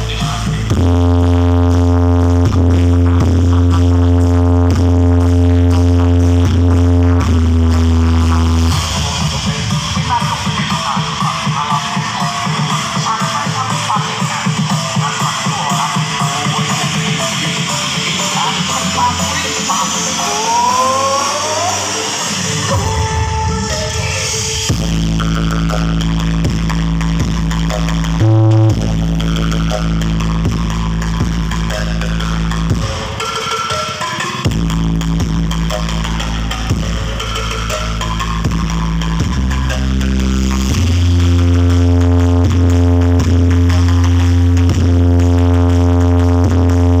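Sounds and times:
deep bass notes: 0:00.0 - 0:10.1, 0:24.7 - 0:33.2, 0:34.5 - 0:47.0
loud electronic dance music: 0:00.0 - 0:47.0.

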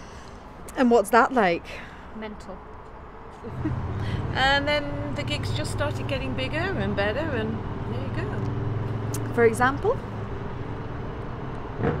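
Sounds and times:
distant city traffic rumble: 0:00.0 - 0:12.0.

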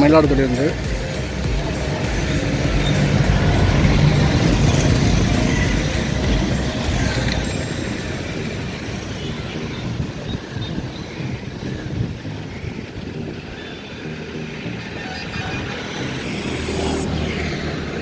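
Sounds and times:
vehicle rumble: 0:00.0 - 0:18.0.

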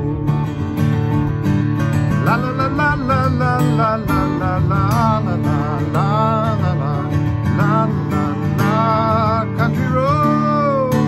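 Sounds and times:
man singing wordless melody: 0:00.0 - 0:00.7, 0:02.1 - 0:11.0
acoustic guitar strumming: 0:00.0 - 0:11.0.

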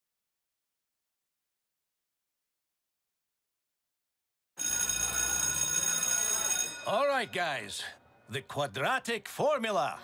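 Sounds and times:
electric school bell ringing: 0:04.6 - 0:07.8.

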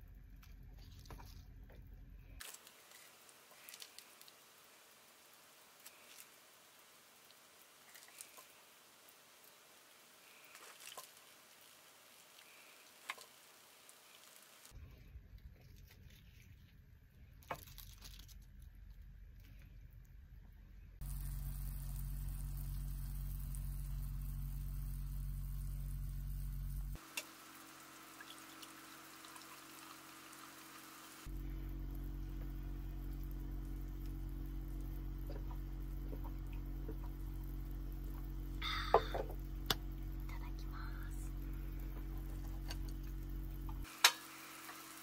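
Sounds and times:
broth simmering and bubbling: 0:02.4 - 0:14.8, 0:21.0 - 0:45.0.

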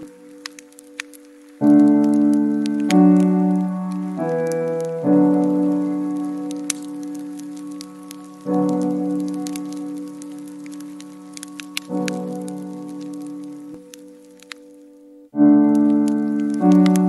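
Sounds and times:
water drips and splashes: 0:00.0 - 0:14.7, 0:15.6 - 0:17.0
soft slow piano music: 0:00.0 - 0:17.0.

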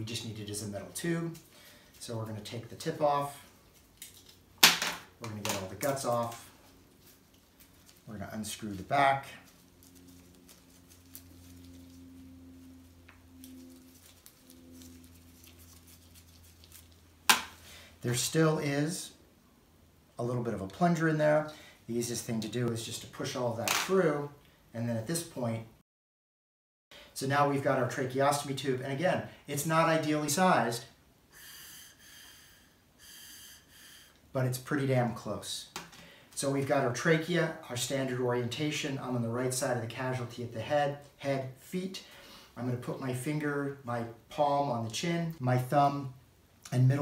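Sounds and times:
steady low hum: 0:00.0 - 0:25.8, 0:27.0 - 0:47.0
airy breath puffs through metal tube: 0:31.3 - 0:34.2.

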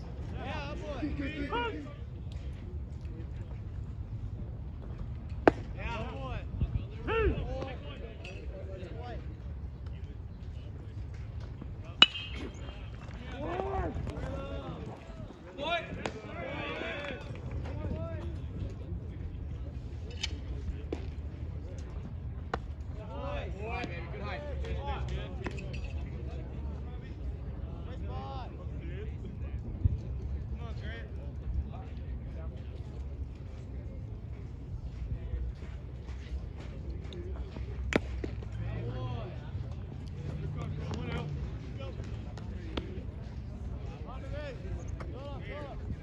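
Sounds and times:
wind rumble on microphone: 0:01.9 - 0:11.9, 0:12.6 - 0:23.1, 0:26.0 - 0:37.8, 0:42.9 - 0:46.0.

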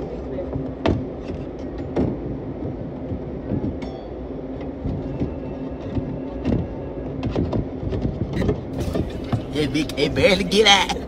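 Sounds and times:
kitchen rumble and hum: 0:08.2 - 0:11.0.

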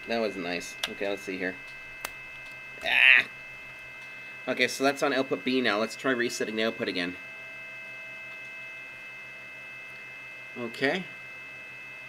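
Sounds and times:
electrical whine: 0:00.0 - 0:12.0
low electrical hum: 0:00.0 - 0:12.0.

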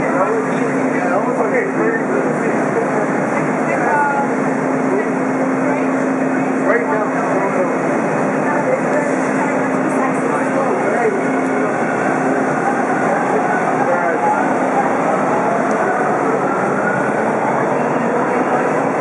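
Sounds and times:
subway train wheels on rails: 0:00.0 - 0:19.0.

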